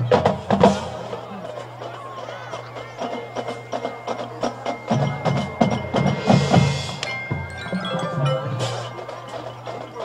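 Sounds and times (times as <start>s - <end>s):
mallet percussion notes: 3.0s - 10.0s.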